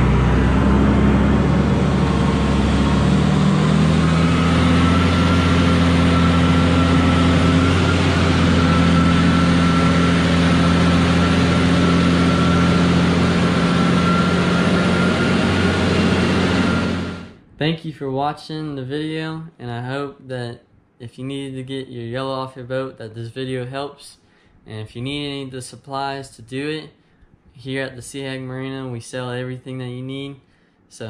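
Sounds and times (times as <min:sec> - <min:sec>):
forklift engine running under load: 0:00.0 - 0:17.4
thin steady whine: 0:00.0 - 0:17.5.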